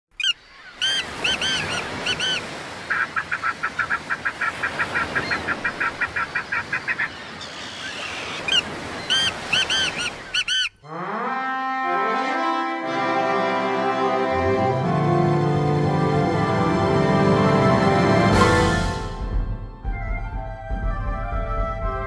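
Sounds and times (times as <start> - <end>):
birds honking: 0.2 - 15.8
orchestral music with brass: 10.8 - 22.0.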